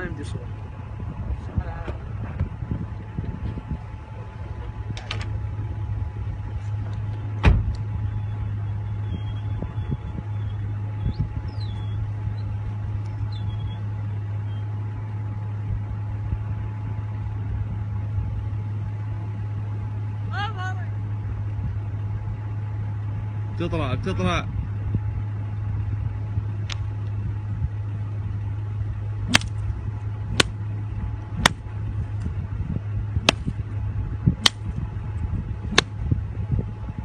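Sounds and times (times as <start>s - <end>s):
vehicle engine humming: 0.0s - 37.0s.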